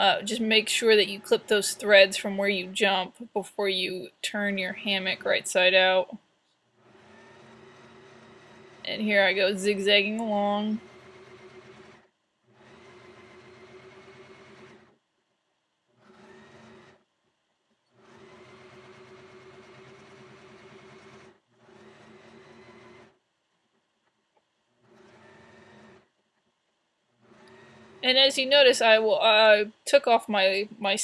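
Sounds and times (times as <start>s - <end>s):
electric sewing machine running: 0.0s - 3.2s, 4.6s - 6.1s, 6.7s - 15.0s, 15.9s - 17.0s, 17.9s - 23.2s, 24.7s - 26.1s, 27.1s - 29.6s.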